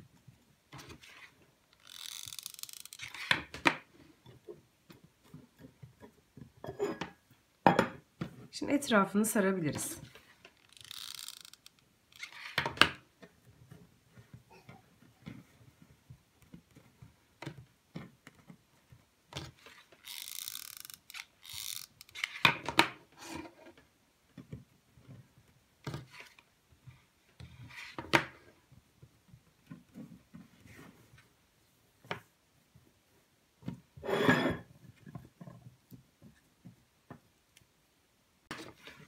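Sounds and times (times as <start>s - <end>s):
rope rustling and rubbing: 0.7s - 4.1s, 10.0s - 12.6s, 19.4s - 22.4s, 29.9s - 31.8s.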